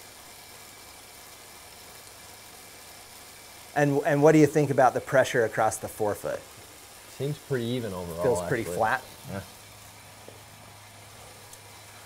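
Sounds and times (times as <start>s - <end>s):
bike trainer humming: 3.8s - 12.0s.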